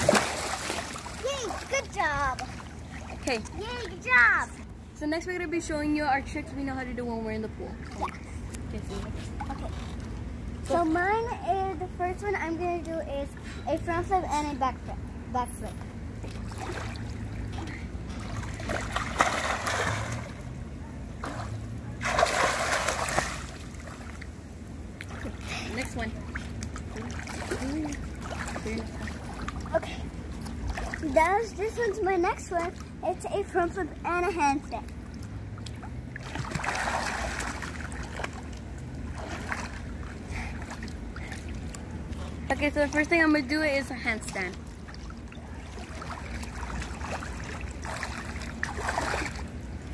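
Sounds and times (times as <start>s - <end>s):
pool water splashing: 0.0s - 49.9s
water lapping and sloshing: 0.0s - 49.9s.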